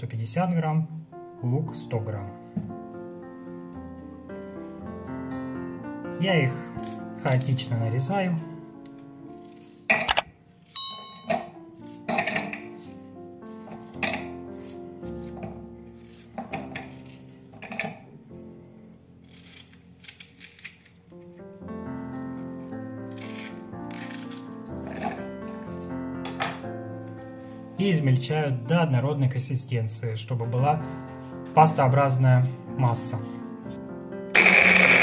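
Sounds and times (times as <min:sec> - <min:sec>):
background music with held notes: 0:00.0 - 0:35.0
knife slicing vegetables: 0:09.3 - 0:11.0, 0:19.2 - 0:20.9, 0:23.1 - 0:25.0.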